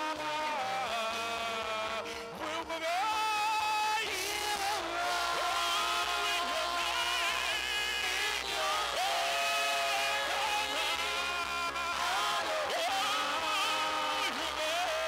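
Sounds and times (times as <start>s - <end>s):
lead singer singing: 0.0s - 15.0s
backing vocalists singing: 4.0s - 15.0s.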